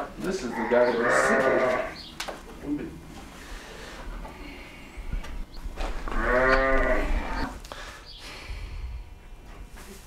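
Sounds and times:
sheep bleating: 0:00.4 - 0:02.0, 0:06.0 - 0:07.5.

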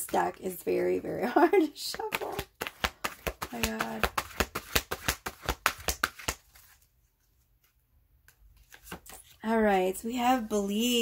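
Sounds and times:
cards being shuffled: 0:01.9 - 0:06.9, 0:07.6 - 0:09.4.

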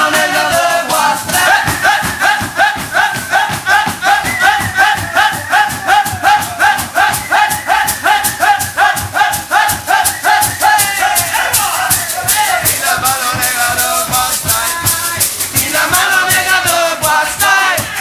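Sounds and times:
fast-strummed acoustic guitar: 0:00.0 - 0:18.0
men chanting in rhythm: 0:00.0 - 0:18.0.

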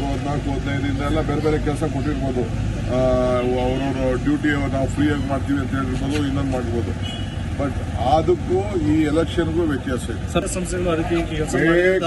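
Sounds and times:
man speaking: 0:00.0 - 0:07.0, 0:07.6 - 0:12.0.

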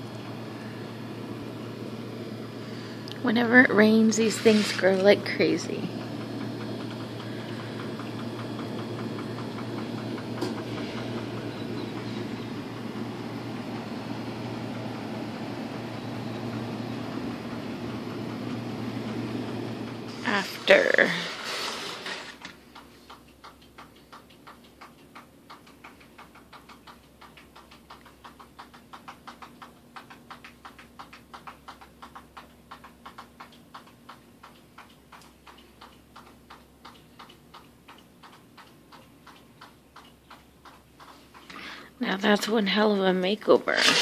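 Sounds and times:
faint steady hum: 0:00.0 - 0:44.0
fast regular ticking: 0:00.1 - 0:44.0.

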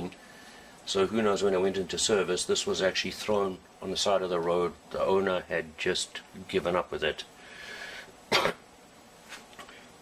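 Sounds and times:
man coughing: 0:08.3 - 0:08.7.

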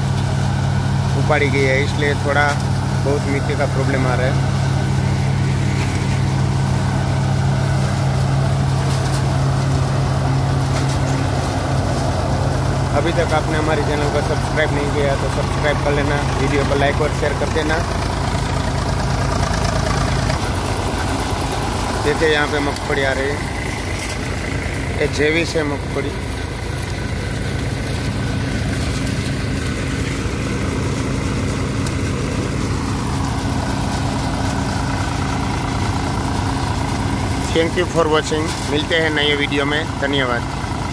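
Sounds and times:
thresher humming: 0:00.0 - 0:40.9
tractor engine running: 0:00.0 - 0:40.9.

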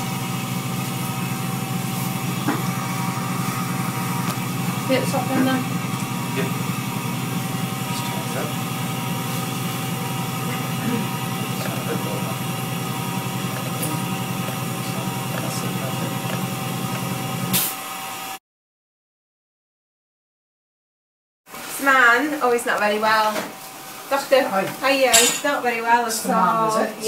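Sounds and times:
low hum: 0:00.0 - 0:17.6.

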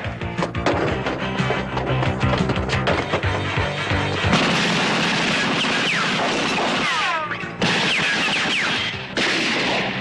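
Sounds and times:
action film music: 0:00.0 - 0:10.0
gunfire-like noise: 0:04.2 - 0:10.0.

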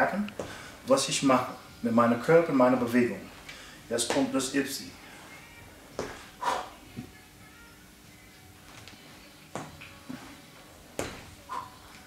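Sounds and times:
man's forceful breaths out: 0:00.4 - 0:00.8.

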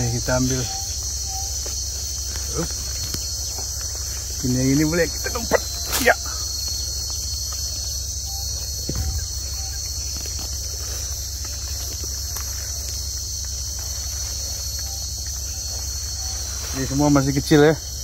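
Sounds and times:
insect chorus buzzing: 0:00.0 - 0:18.0.

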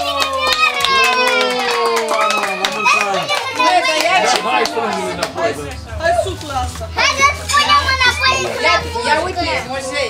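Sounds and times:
children squealing and shouting: 0:00.0 - 0:04.1.

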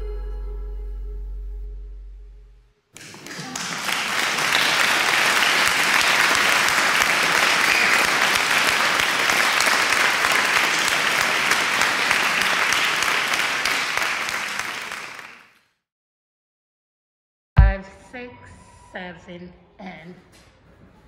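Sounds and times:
audience applauding: 0:03.0 - 0:15.6.

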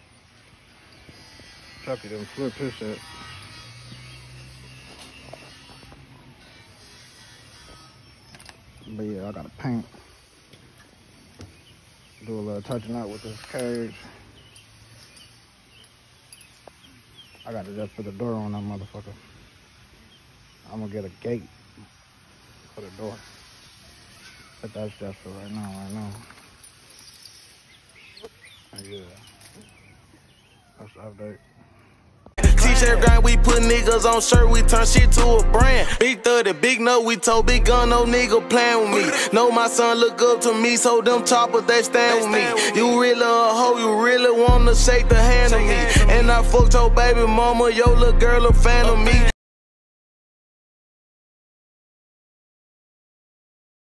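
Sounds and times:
faint outdoor ambience: 0:00.0 - 0:49.3.

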